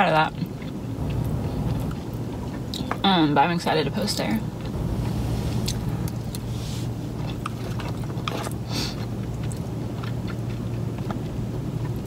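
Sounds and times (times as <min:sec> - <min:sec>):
low car hum: 0:00.0 - 0:12.0
close chewing: 0:00.3 - 0:03.0, 0:07.2 - 0:12.0.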